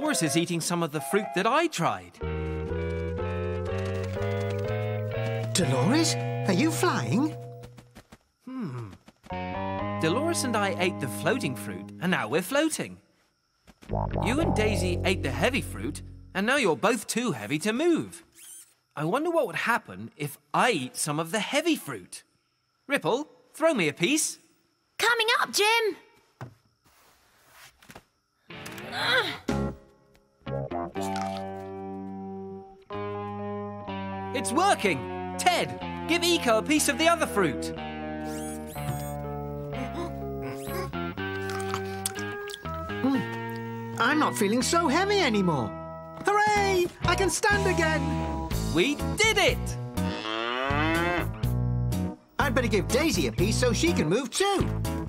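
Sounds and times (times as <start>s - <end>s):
background music: 0.0s - 7.6s, 9.4s - 12.1s, 13.9s - 16.4s, 30.5s - 55.0s
cartoon cow mooing: 50.0s - 51.4s.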